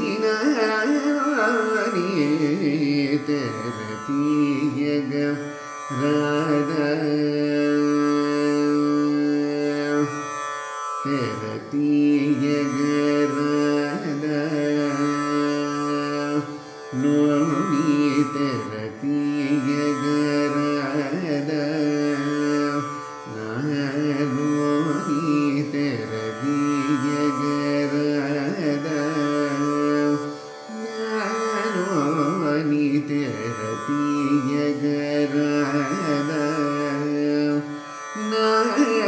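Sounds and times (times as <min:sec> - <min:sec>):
man singing: 0:00.0 - 0:10.4, 0:11.0 - 0:39.0
tanpura drone: 0:00.0 - 0:39.0.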